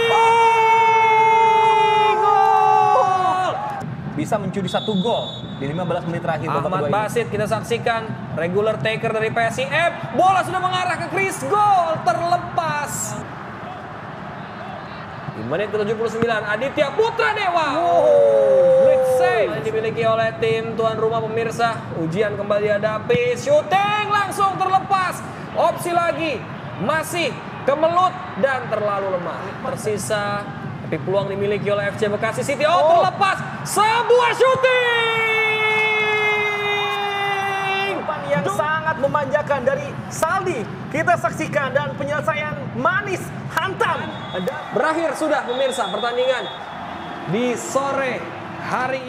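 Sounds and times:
stadium crowd noise: 0.0s - 49.0s.

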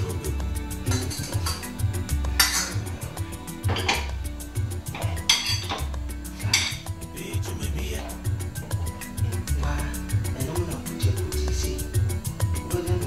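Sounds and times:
background music with bass beat: 0.0s - 13.0s
metal spoon scraping pot: 2.4s - 3.0s, 3.7s - 4.1s, 4.9s - 6.9s.

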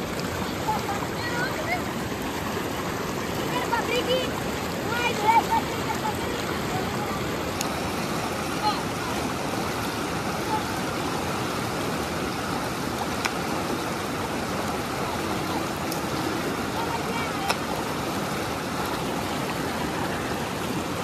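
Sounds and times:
faint splashes: 0.0s - 21.0s
water rushing over stones: 0.0s - 21.0s.

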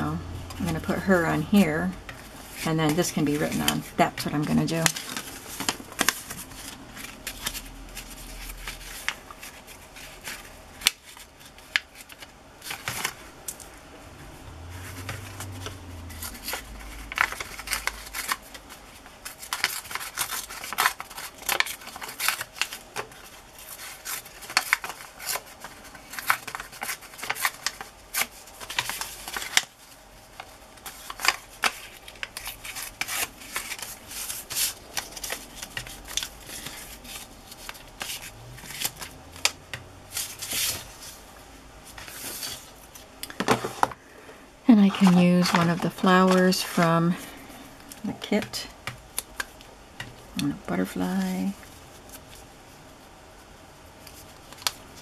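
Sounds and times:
paper rustling and tearing: 2.1s - 13.3s, 14.6s - 41.2s, 41.8s - 43.0s, 44.7s - 47.5s.

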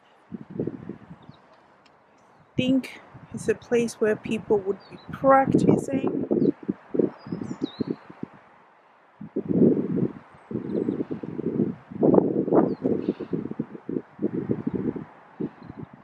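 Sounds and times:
wind buffeting microphone: 0.0s - 1.5s, 2.4s - 8.5s, 9.2s - 16.0s.

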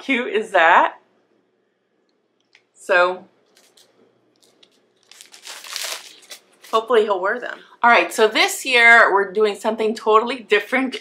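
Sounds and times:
plastic packaging crinkling: 3.4s - 7.0s.

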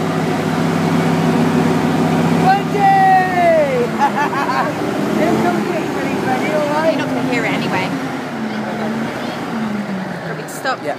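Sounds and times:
people chatting: 2.4s - 9.6s, 10.2s - 10.9s.

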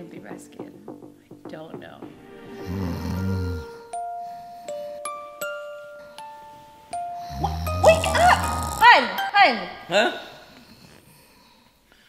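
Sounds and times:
soft background music: 0.0s - 9.9s
man snoring: 2.6s - 3.9s, 7.2s - 8.9s.

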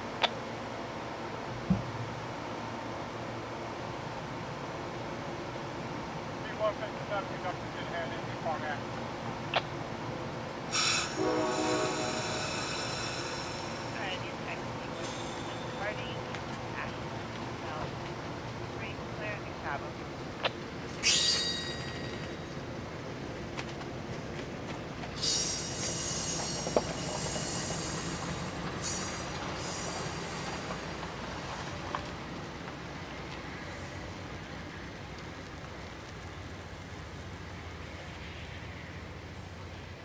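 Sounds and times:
low train rumble: 0.0s - 40.0s
train wheels squealing on rails: 10.7s - 16.2s, 21.0s - 22.6s, 25.1s - 31.8s, 33.5s - 34.2s, 37.8s - 40.0s
locomotive air horn blast: 10.8s - 14.0s
ringing high burst of sound: 10.8s - 14.0s.

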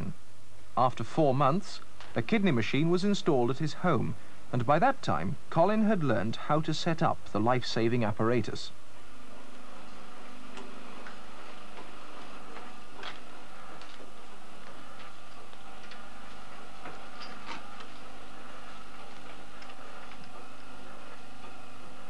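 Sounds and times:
machine humming: 0.0s - 22.0s.

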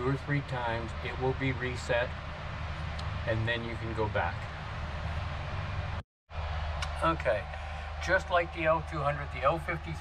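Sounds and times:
low machine hum with hiss: 0.0s - 10.0s.

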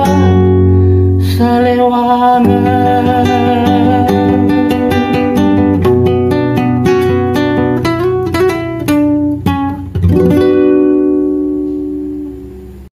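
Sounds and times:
acoustic guitar playing: 0.0s - 12.9s.

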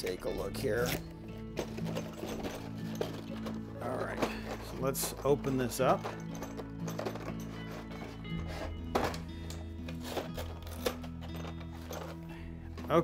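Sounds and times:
background music of low notes: 0.0s - 13.0s.

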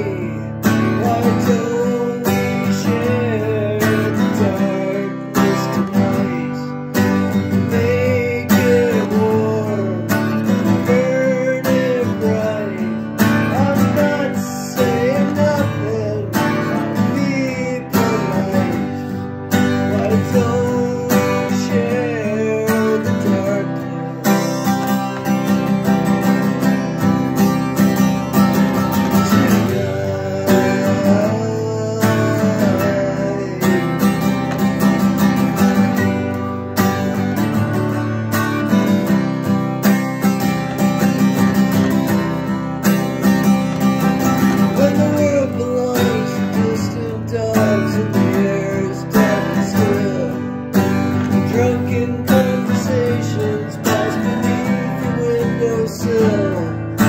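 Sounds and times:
man singing: 0.0s - 39.6s, 40.2s - 57.0s
strummed acoustic guitar: 0.0s - 57.0s.

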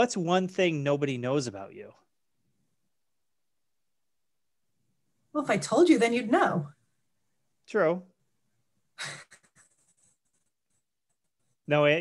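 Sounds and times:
woman's breathy laugh: 9.0s - 10.2s.

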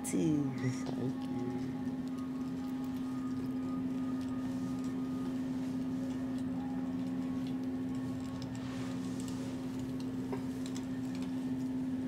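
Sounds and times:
low music drone: 0.0s - 9.9s.

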